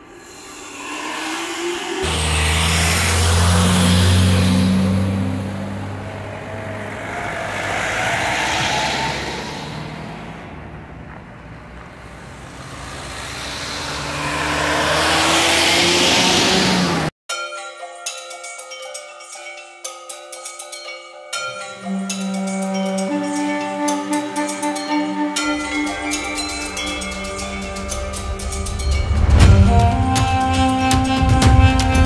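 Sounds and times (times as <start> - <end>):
engine note rising: 0.0 - 17.1, 23.0 - 32.0
road noise and wind: 0.0 - 17.1, 23.9 - 32.0
deep engine hum: 2.0 - 7.1.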